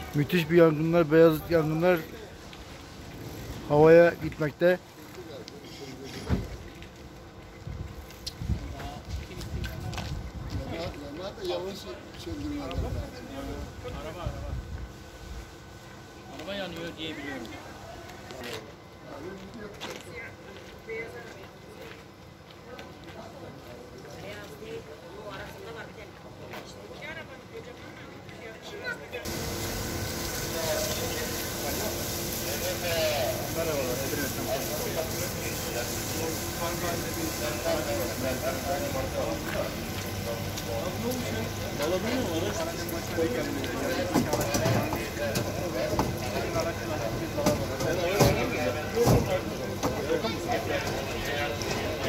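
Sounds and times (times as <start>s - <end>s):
fire hose spraying water: 0.0s - 9.2s, 29.2s - 52.0s
steady low hum: 29.2s - 43.7s.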